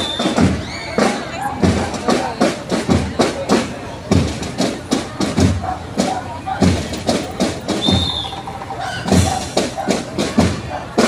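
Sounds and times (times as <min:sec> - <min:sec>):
crowd chatter: 0:00.0 - 0:11.0
marching band drums: 0:00.0 - 0:11.0
bass drum strokes: 0:00.3 - 0:11.0.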